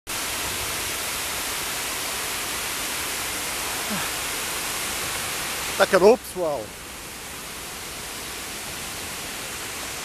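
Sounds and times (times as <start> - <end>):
steady microphone hiss: 0.1 - 10.0.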